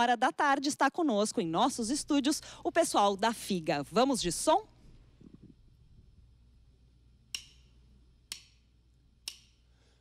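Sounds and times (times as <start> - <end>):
drumsticks clicking together: 7.3 - 7.7, 8.3 - 8.6, 9.2 - 9.6.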